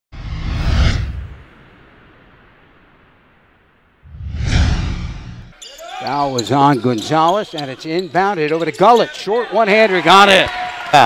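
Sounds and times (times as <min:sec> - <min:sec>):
whoosh with deep boom: 0:00.1 - 0:01.8, 0:04.1 - 0:05.6.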